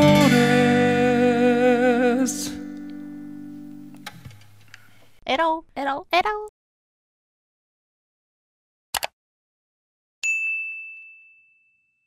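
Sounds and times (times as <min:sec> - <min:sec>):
notification bell chime: 0:10.2 - 0:12.0.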